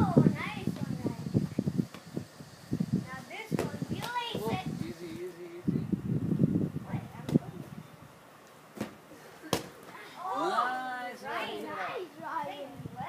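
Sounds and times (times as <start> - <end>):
ball being kicked: 3.5 - 4.2, 8.8 - 9.9.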